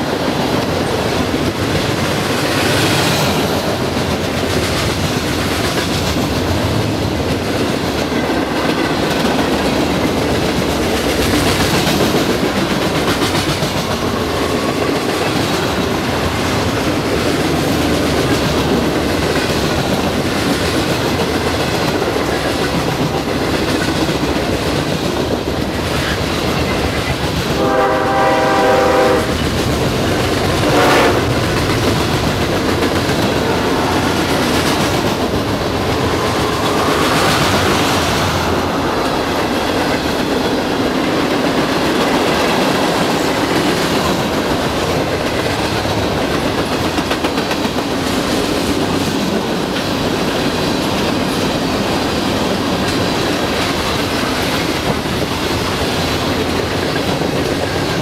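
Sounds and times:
freight train wheels on rails: 0:00.0 - 0:58.0
train horn blasts: 0:27.5 - 0:29.4, 0:30.5 - 0:31.4, 0:33.2 - 0:34.5.

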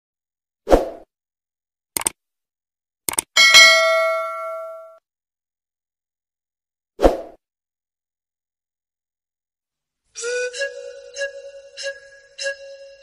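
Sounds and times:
quick clicks: 0:02.0 - 0:02.2, 0:03.1 - 0:03.4
bell-like notification ding: 0:03.4 - 0:05.0.

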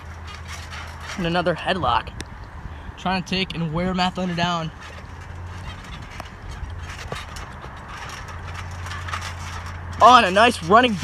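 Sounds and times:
steady low hum: 0:00.0 - 0:11.0
trampoline springs and mat creaking: 0:00.0 - 0:11.0.

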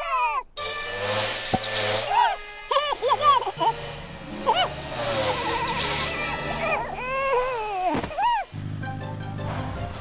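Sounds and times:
squeaky cartoon character voice: 0:04.5 - 0:08.4.

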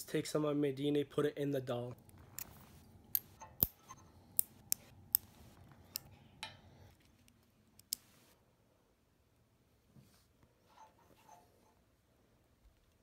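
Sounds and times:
nail clippers clipping: 0:03.1 - 0:03.8.

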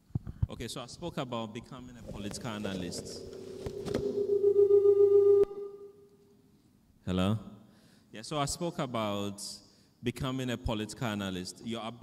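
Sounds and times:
microphone feedback tone: 0:02.6 - 0:06.1.

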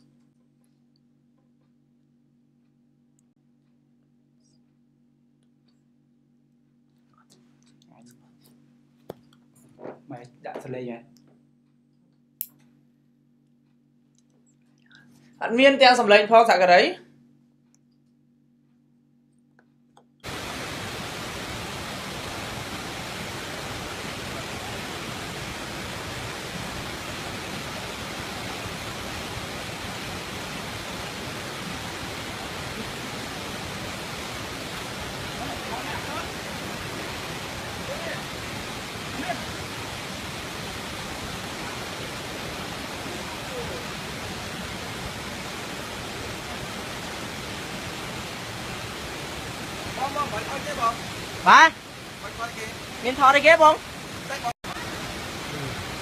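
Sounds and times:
water rushing over rocks: 0:20.2 - 0:56.0.

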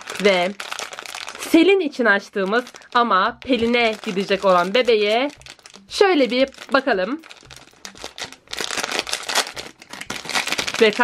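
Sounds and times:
foil packet crinkling: 0:00.0 - 0:11.0.

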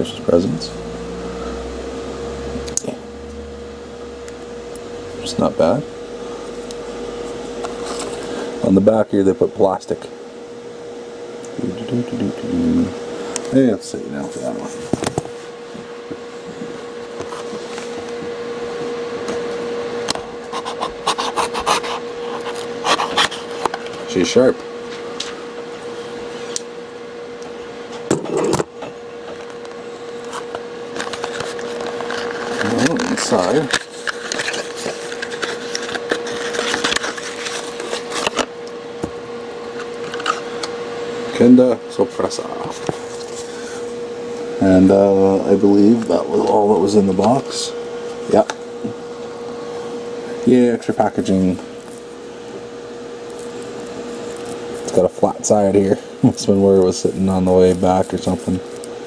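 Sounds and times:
faint hum: 0:00.0 - 0:59.0
mid-pitched whine: 0:00.0 - 0:59.0.

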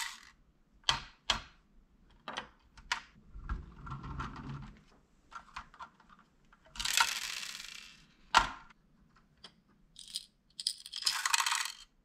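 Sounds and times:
plastic pieces clattering on wood: 0:10.6 - 0:11.9.

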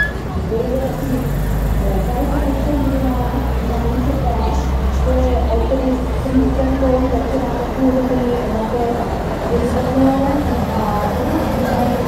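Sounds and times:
bus diesel engines rumbling: 0:00.0 - 0:12.0
people talking: 0:00.0 - 0:12.0.

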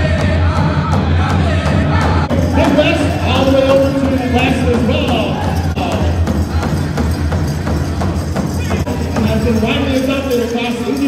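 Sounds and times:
powwow drum beating: 0:00.0 - 0:11.0.

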